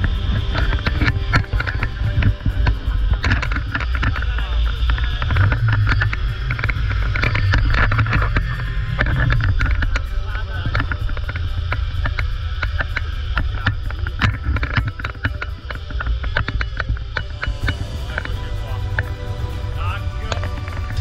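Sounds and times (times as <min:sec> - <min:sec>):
wind rushing over microphone: 0:00.0 - 0:21.0.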